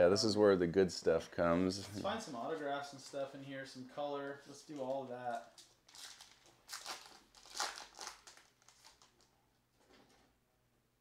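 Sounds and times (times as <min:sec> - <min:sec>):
handling of cards: 0:04.2 - 0:10.2
wrapper tearing and crinkling: 0:04.7 - 0:09.3.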